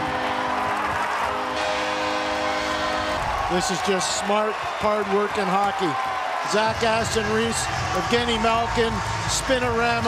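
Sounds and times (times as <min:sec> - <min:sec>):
arena music sustained chords: 0:00.0 - 0:03.9
crowd noise: 0:00.0 - 0:10.0.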